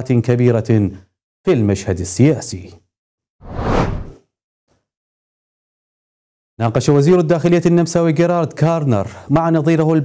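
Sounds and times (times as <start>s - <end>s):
whoosh sound effect: 3.4s - 4.2s.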